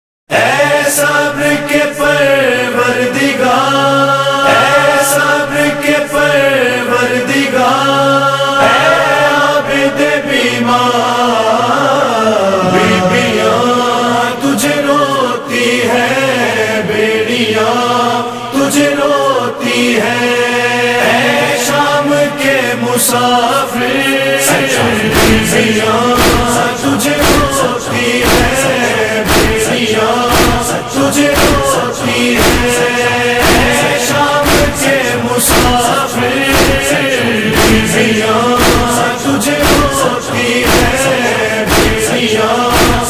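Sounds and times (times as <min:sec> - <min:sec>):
low voices chanting a lament: 0:00.3 - 0:43.0.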